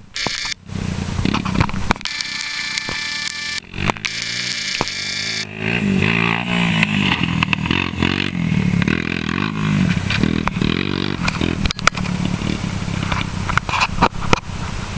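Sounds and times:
sharp clicks: 0:00.2 - 0:00.6, 0:01.3 - 0:05.5
quad engine revving: 0:00.2 - 0:13.4.

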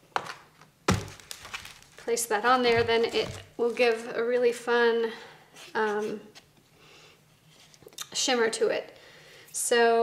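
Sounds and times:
sharp thunk on cardboard: 0:00.9 - 0:01.8.

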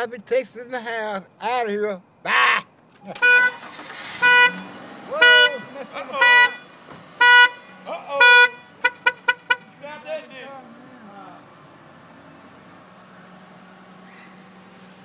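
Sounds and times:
car horn honking: 0:03.1 - 0:10.4.

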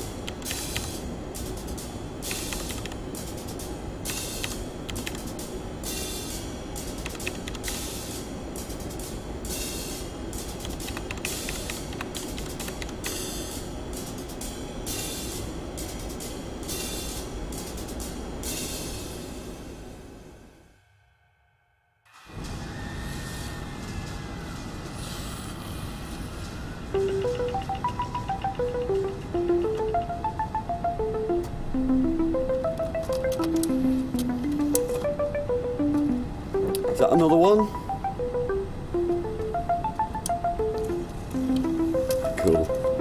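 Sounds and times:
dense steady drone: 0:22.4 - 0:43.0.

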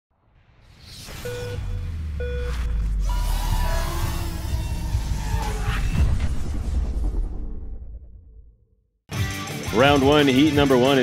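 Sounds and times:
short synth tone: 0:00.9 - 0:06.8
deep bass drone: 0:01.3 - 0:08.7.

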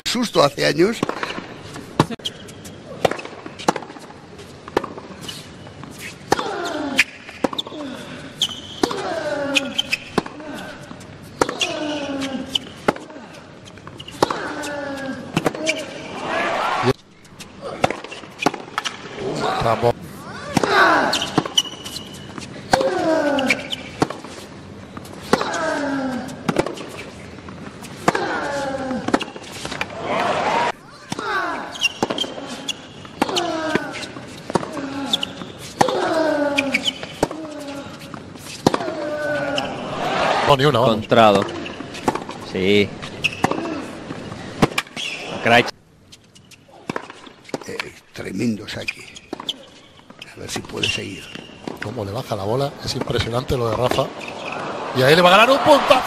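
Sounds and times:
tennis ball bouncing: 0:01.0 - 0:02.2, 0:03.0 - 0:05.1, 0:09.8 - 0:11.7, 0:13.7 - 0:14.4, 0:17.8 - 0:19.2, 0:26.4 - 0:28.2, 0:29.0 - 0:29.9, 0:31.1 - 0:39.0, 0:41.4 - 0:42.4, 0:43.0 - 0:45.2, 0:46.8 - 0:47.6
racket striking tennis ball: 0:17.8 - 0:19.1, 0:31.1 - 0:32.4, 0:41.4 - 0:42.4, 0:43.2 - 0:45.2.

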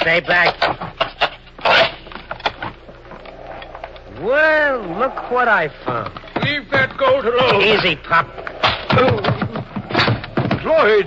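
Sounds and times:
wood scraping: 0:00.0 - 0:11.0.

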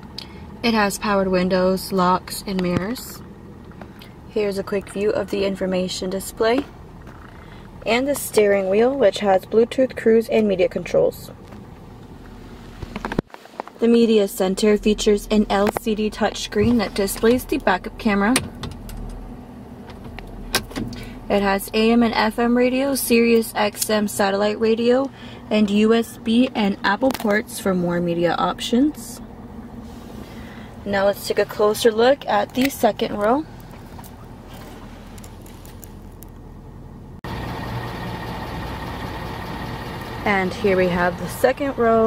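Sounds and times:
diesel engine idling: 0:00.0 - 0:12.8, 0:14.2 - 0:42.0.

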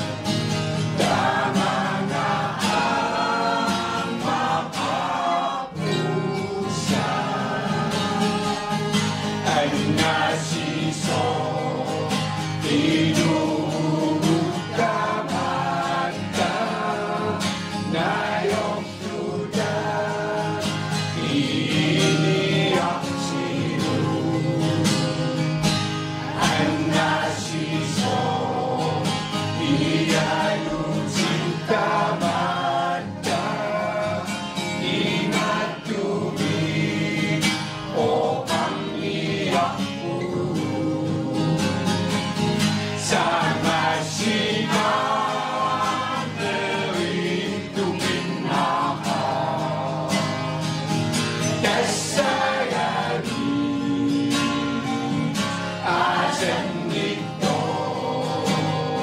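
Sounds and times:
mixed choir singing: 0:00.0 - 0:59.0
strummed acoustic guitar: 0:00.0 - 0:59.0.

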